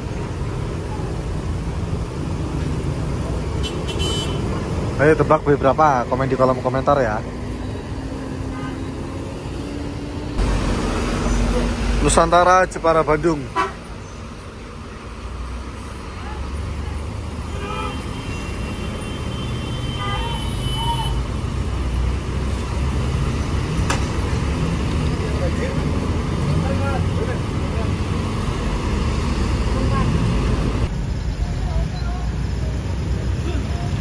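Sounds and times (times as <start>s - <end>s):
diesel coach engine rumbling: 0.0s - 19.0s, 20.0s - 34.0s
road traffic: 0.0s - 34.0s.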